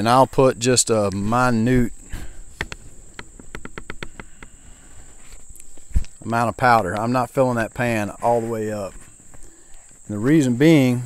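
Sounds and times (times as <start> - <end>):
high insect trill: 0.0 - 11.0.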